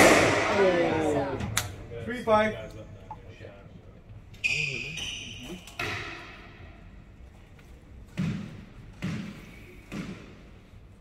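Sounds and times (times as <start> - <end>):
squash ball cracking off walls: 8.1 - 10.5.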